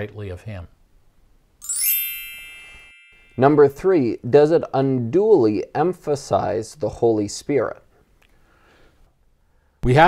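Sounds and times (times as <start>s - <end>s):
falling bell-like chime: 1.6s - 3.8s.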